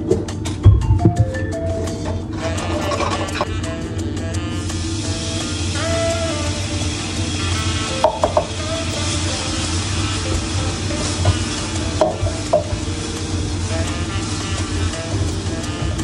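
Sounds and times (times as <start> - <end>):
food sizzling: 2.4 - 16.0.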